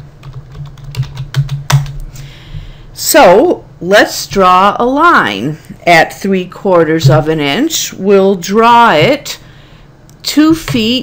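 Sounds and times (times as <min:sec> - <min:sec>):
keyboard keystrokes: 0:00.2 - 0:02.0.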